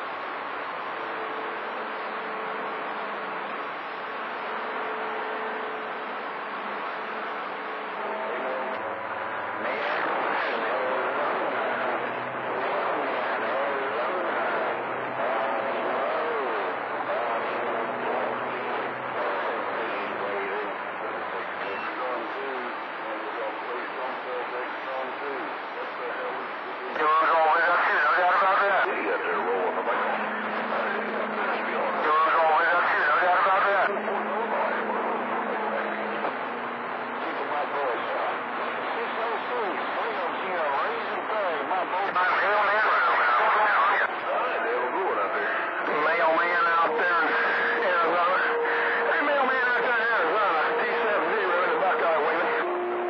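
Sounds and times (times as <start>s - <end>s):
low hum: 0.0s - 53.0s
radio static hiss: 0.0s - 53.0s
voice over cb radio: 0.0s - 53.0s
garbled warbling radio voice: 25.9s - 36.0s, 37.2s - 52.8s.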